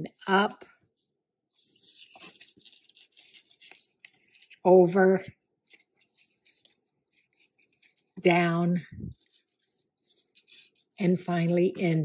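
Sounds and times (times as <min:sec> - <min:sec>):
cardstock rustling and scraping: 0:01.6 - 0:11.6.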